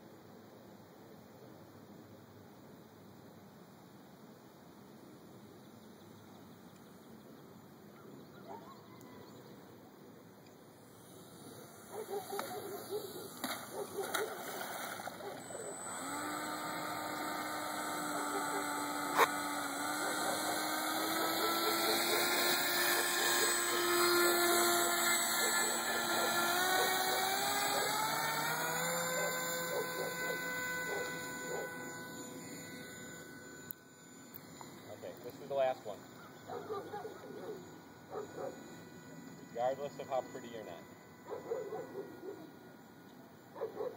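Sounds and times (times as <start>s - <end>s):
electric motor and propeller whining: 9.6s - 43.9s.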